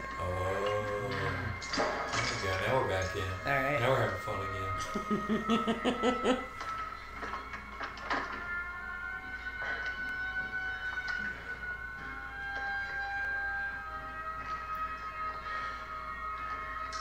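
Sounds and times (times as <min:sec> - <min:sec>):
film soundtrack with held high tones: 0:00.0 - 0:17.0.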